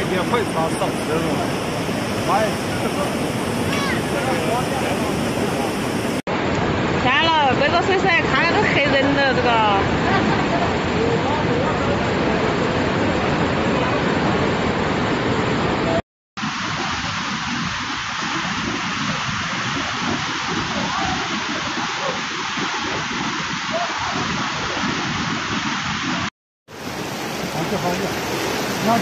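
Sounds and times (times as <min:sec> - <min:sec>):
floodwater rushing: 0:00.0 - 0:29.0.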